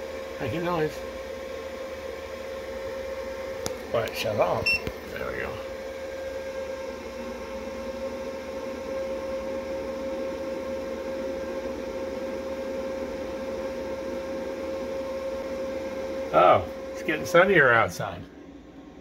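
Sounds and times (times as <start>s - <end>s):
inverter humming: 0.0s - 19.0s.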